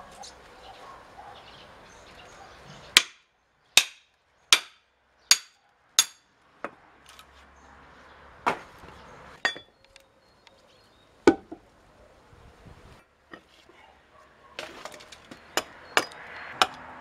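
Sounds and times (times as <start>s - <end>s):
hammer striking steel tool: 4.6s - 6.3s.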